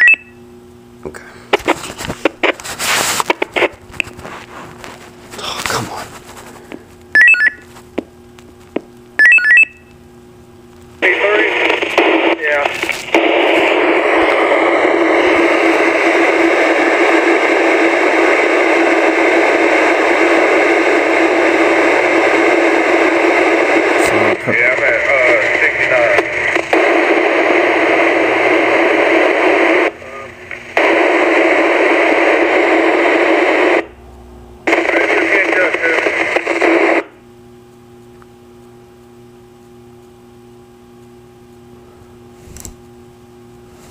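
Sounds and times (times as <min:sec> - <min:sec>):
radio static: 0:01.0 - 0:08.0, 0:10.8 - 0:34.0, 0:34.6 - 0:37.2
faint voice over radio: 0:11.0 - 0:12.8, 0:24.0 - 0:26.4, 0:29.6 - 0:30.4, 0:34.7 - 0:37.0.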